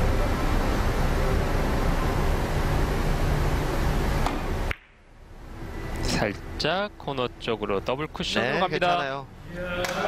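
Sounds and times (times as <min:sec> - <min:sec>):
low hum: 0:00.0 - 0:09.5.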